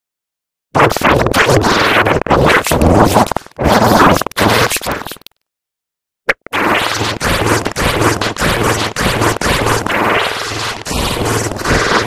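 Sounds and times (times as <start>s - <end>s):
scratchy stuttering distorted noise: 0.8s - 5.3s, 6.3s - 12.0s.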